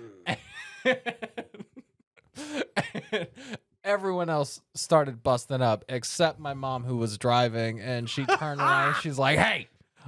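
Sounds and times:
man laughing hard: 0.1 - 3.6, 8.1 - 9.0.

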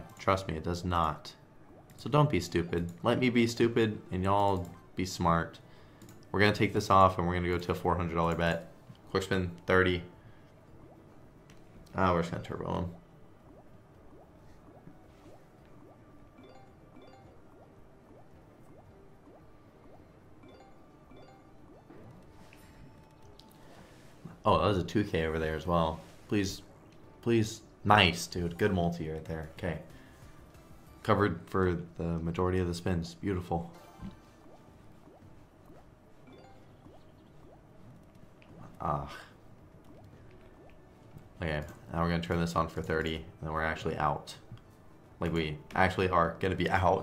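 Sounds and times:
quiet game music: 0.0 - 47.0
bubble-like bloops: 12.3 - 23.5, 33.8 - 38.9, 39.6 - 41.0
high chiming ticks: 15.8 - 23.6, 36.3 - 37.6.

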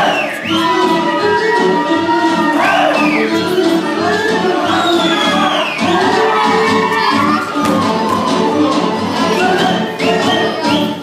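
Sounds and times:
folk dance music in a hall: 0.0 - 11.0.

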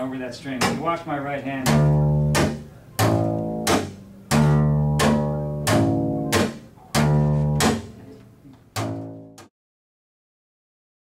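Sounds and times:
double bass low notes: 0.0 - 9.5
string slapping fingerboard: 0.5 - 9.5.

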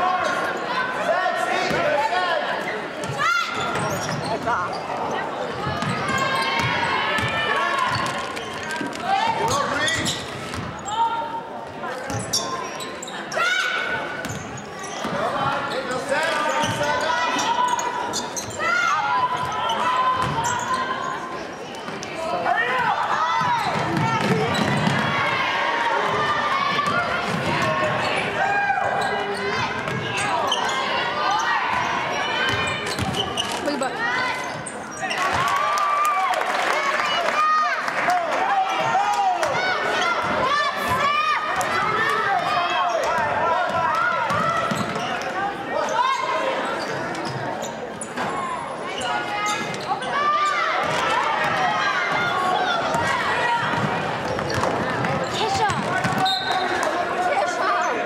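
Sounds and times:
voices in echoing gym: 0.0 - 58.0
sneaker squeaks: 2.6 - 11.2, 11.8 - 22.0, 23.4 - 25.1, 26.8 - 35.4, 44.3 - 51.0, 52.5 - 56.9.

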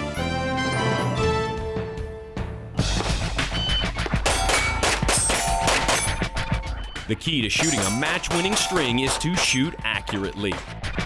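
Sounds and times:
handgun shots: 4.2 - 6.2
steel target plates ringing: 4.2 - 11.0.

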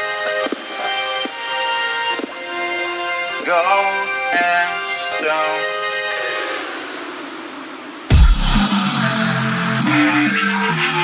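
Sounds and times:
wash of noise: 3.4 - 11.0
held synth notes: 8.1 - 11.0.

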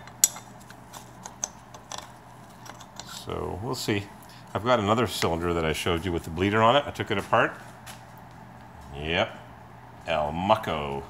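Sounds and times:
small metal clicks: 0.0 - 3.2.

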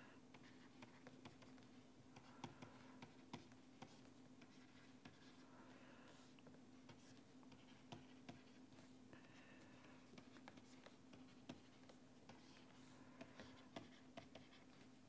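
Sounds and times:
faint steady hum: 0.0 - 15.0
stylus tapping on pen tablet: 13.2 - 14.8.

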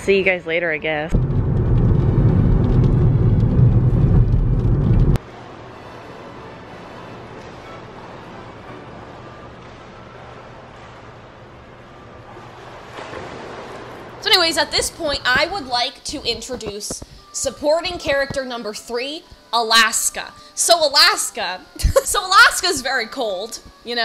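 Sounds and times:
car road and engine rumble: 1.1 - 5.2
indoor room hum: 1.1 - 17.4.

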